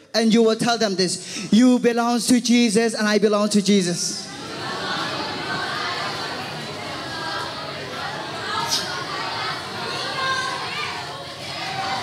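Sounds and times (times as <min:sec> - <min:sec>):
children talking: 0:04.3 - 0:12.0.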